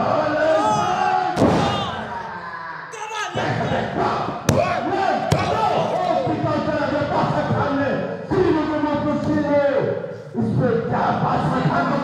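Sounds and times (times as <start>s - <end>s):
impacts on wrestling ring: 0.6s - 2.0s.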